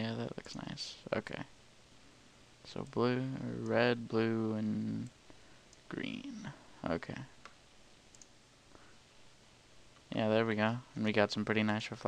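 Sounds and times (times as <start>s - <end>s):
computer mouse clicks: 7.4s - 8.4s.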